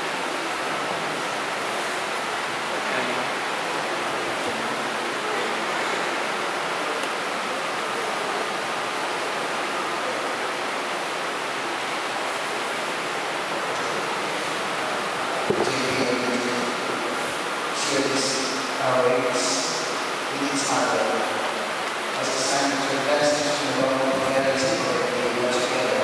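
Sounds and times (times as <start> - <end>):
steady rushing noise: 0.0 - 26.0.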